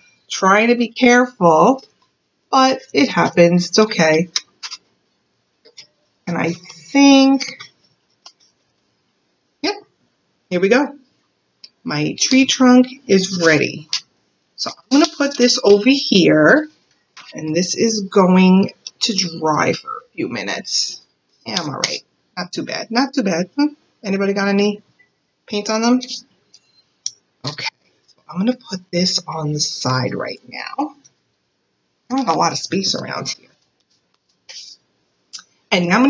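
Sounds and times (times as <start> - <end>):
woman speaking: 6.3 - 7.6, 11.7 - 13.9, 14.6 - 16.7, 17.3 - 24.8.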